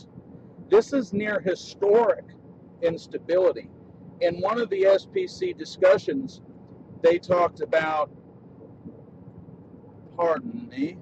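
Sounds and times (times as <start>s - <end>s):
faint even hum: 0.0s - 11.0s.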